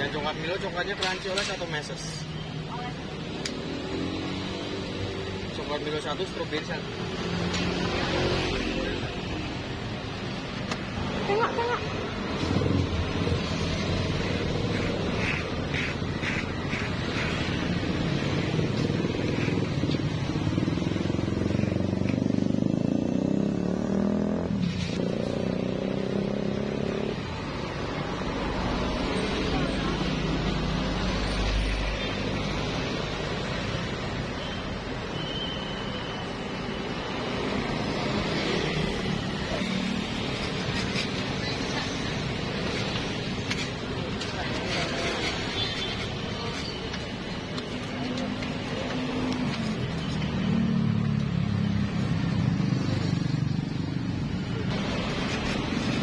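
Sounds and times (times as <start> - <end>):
road traffic passing: 0.0 - 56.0.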